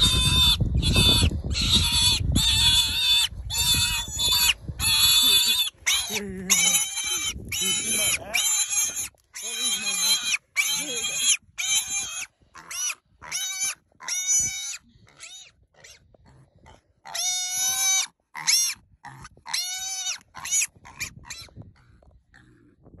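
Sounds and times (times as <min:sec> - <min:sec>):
piglet squealing: 0:00.0 - 0:16.0, 0:17.1 - 0:21.5.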